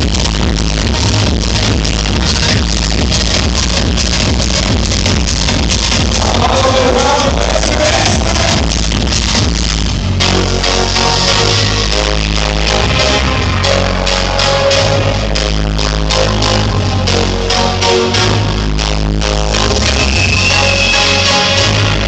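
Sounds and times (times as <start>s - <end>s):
loud electronic dance music: 0.0s - 22.0s.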